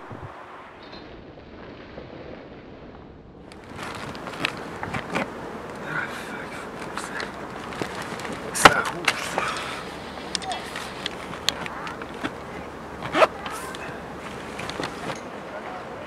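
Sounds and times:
knocks and clicks of bags handled: 3.5 - 5.8, 6.8 - 15.3
muffled background noise: 3.6 - 16.0
faint voices: 3.7 - 16.0.

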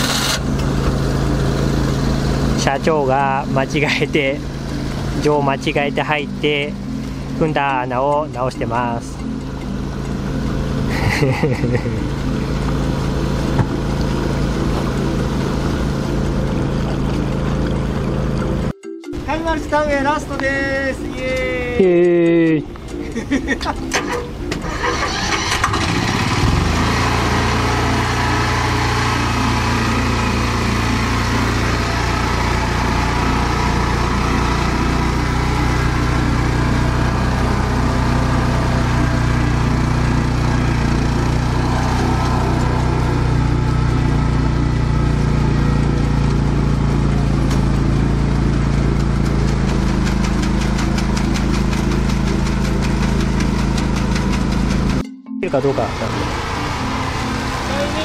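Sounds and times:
machine engine running: 0.0 - 55.0, 55.6 - 58.0.

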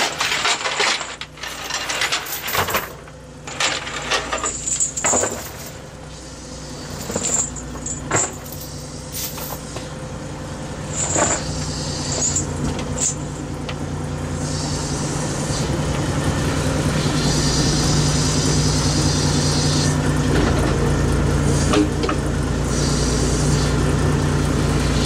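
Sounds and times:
chain clinking against boat rail: 0.0 - 5.8, 6.9 - 9.6
boat machinery hum: 0.0 - 25.0.

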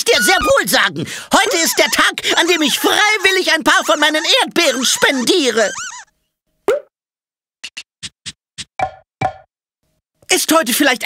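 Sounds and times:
cartoon pop with pitch sweep: 6.6 - 6.9.

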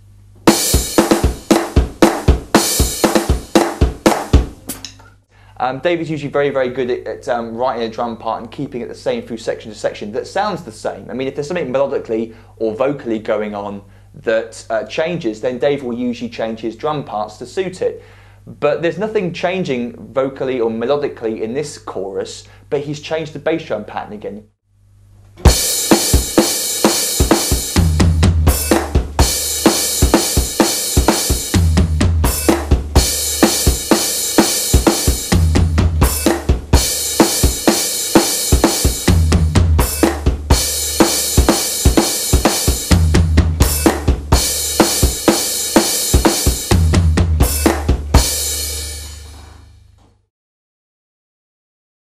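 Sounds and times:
electronic drum kit rock beat: 0.4 - 4.9, 25.4 - 49.4.

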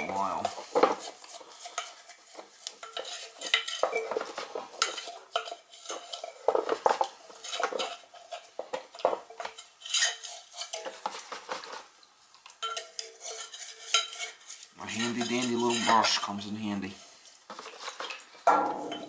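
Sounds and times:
metal canister clinking and scraping: 0.0 - 11.8, 12.6 - 19.0.

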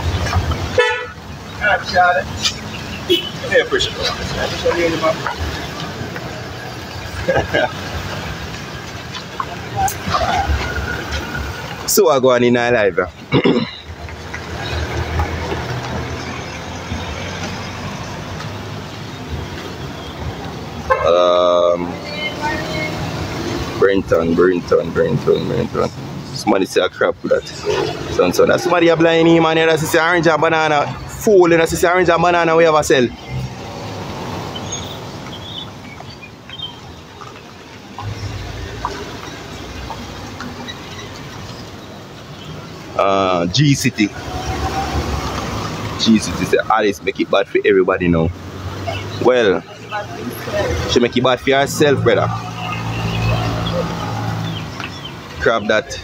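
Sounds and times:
road traffic passing: 0.0 - 56.0
vehicle horn toot: 0.7 - 1.2, 3.0 - 3.9, 20.8 - 21.3.

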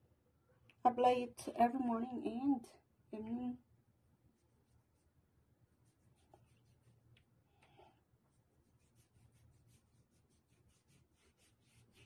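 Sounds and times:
hand rubbing lotion on skin: 4.3 - 7.1, 8.3 - 12.0.

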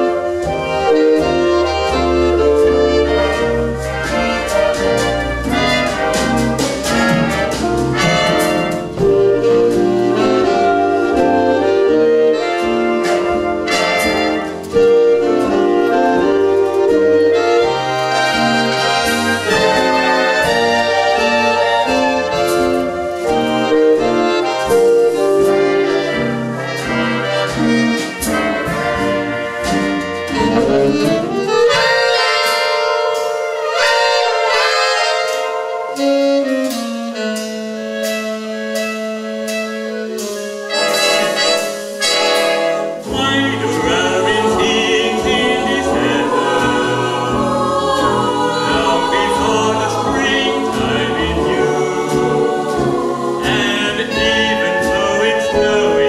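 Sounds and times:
brass section: 0.0 - 56.0
jazz big band playing swing: 0.0 - 56.0.

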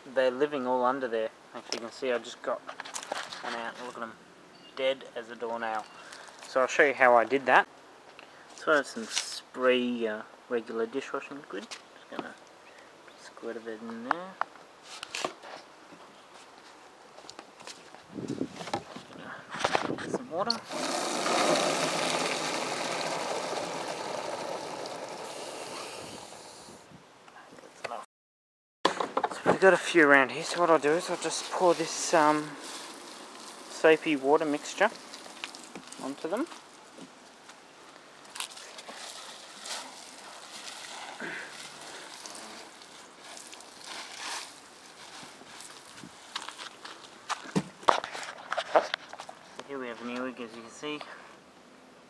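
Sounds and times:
water running into plastic can: 20.6 - 26.3, 30.6 - 36.6, 38.4 - 44.6
dry leaves rustling and crackling: 30.2 - 47.2
sharp crackles and knocks: 30.4 - 41.2, 41.8 - 50.2.

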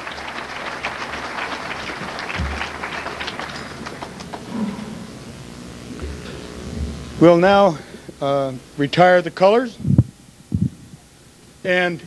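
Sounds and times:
audience applauding: 0.0 - 5.2
brief low thump: 6.0 - 7.1.

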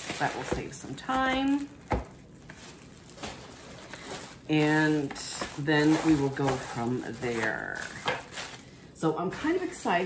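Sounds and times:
packing rustling: 0.0 - 8.7.

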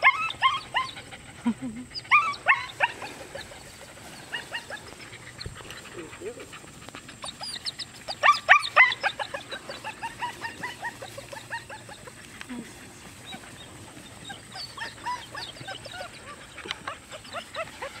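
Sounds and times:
puppies yipping and squealing: 0.0 - 18.0.

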